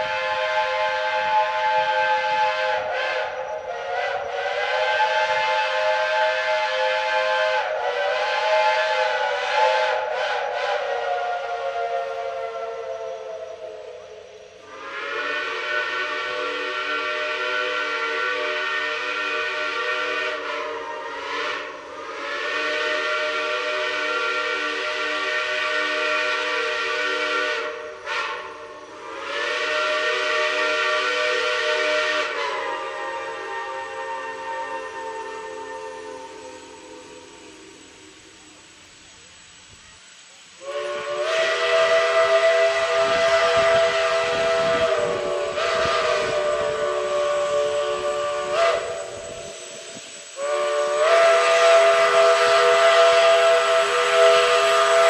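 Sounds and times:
steam locomotive whistle blasts: 0.0 - 55.0.

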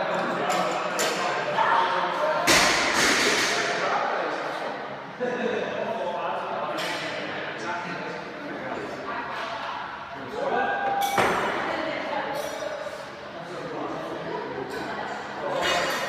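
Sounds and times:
voices echoing in a hall: 0.0 - 16.0.

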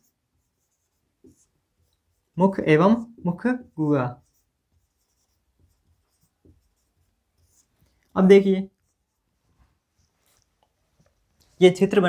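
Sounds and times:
marker pen scratching on whiteboard: 0.0 - 12.0.

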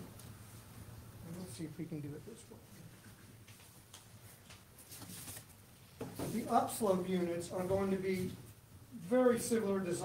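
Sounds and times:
paper sheets rustling: 4.8 - 5.6.

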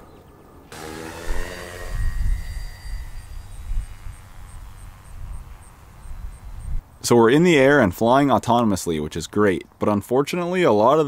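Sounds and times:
electric motor and propeller whine: 0.7 - 7.0
wind rumble on microphone: 1.3 - 7.0.

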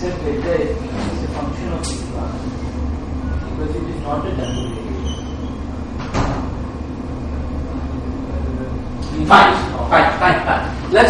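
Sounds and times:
low hum of lecture room: 0.0 - 11.0.

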